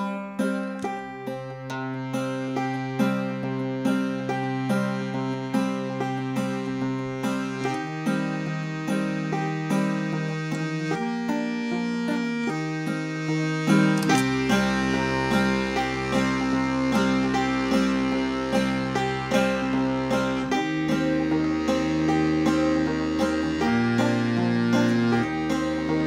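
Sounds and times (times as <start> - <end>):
accordion chords: 0.0 - 26.0
plucked banjo notes: 0.0 - 26.0
deep bass notes: 2.0 - 26.0.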